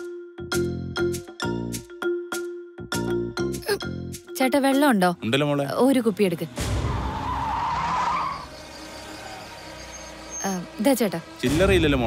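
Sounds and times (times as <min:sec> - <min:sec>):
tyres squealing: 0:06.8 - 0:11.4.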